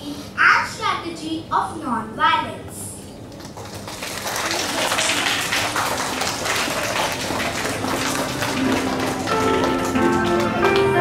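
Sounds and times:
scattered hand-clapping: 3.3s - 11.0s
instrumental background music: 7.8s - 11.0s.

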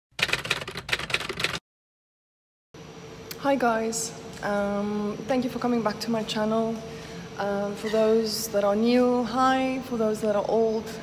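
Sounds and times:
typewriter keystrokes: 0.1s - 1.6s.

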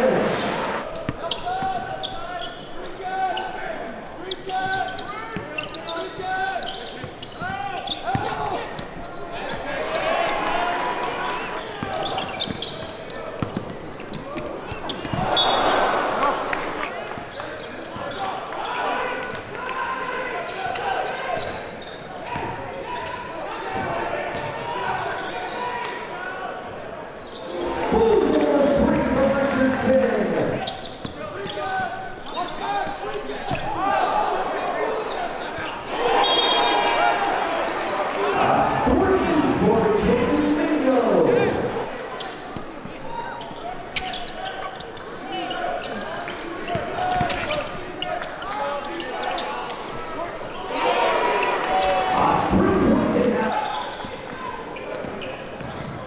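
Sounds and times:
crowd voices: 0.0s - 56.0s.

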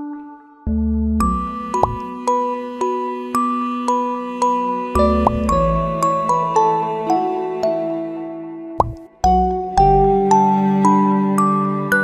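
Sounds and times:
soft bell-like children's music: 0.0s - 12.0s
short rising plop: 8.8s - 9.0s.

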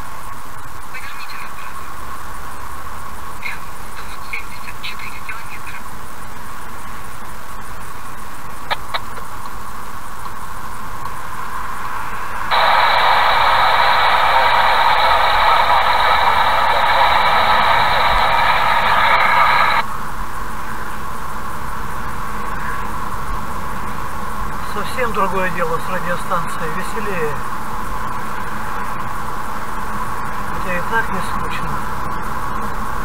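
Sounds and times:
loud thin-sounding noise: 9.6s - 20.1s.

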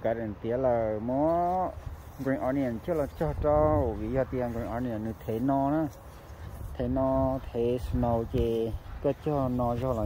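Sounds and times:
person talking: 0.0s - 6.1s, 6.7s - 10.0s.

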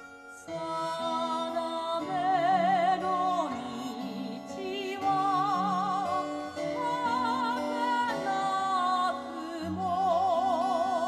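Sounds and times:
singing voice with vibrato: 0.0s - 11.0s.

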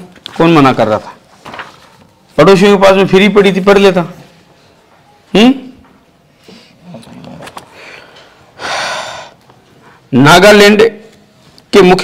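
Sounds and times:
person's sharp breath: 7.7s - 10.0s.

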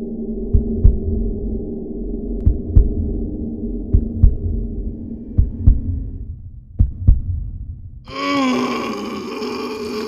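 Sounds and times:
low hum: 0.0s - 8.1s
heartbeat thumps: 0.4s - 1.4s, 2.4s - 8.0s.

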